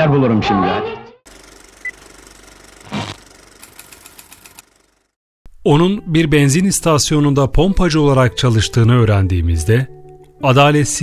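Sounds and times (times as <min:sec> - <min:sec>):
film reel whirring and rattling: 0:01.3 - 0:05.1
quick clicks: 0:02.9 - 0:04.7.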